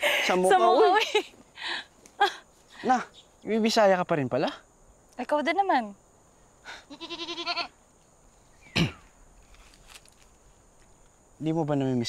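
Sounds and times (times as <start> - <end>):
goat bleating: 6.9 - 7.8.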